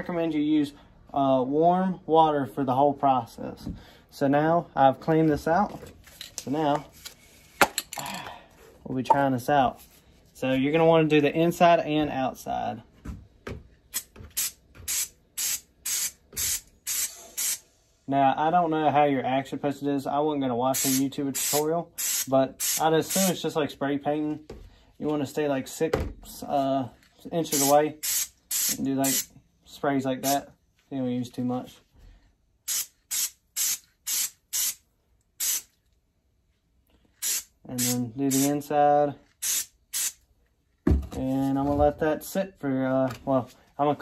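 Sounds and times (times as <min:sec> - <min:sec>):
aerosol can spraying: 0:13.9 - 0:17.7, 0:20.8 - 0:23.3, 0:27.5 - 0:29.3, 0:32.7 - 0:34.8, 0:35.4 - 0:35.7, 0:37.2 - 0:38.6, 0:39.4 - 0:40.2.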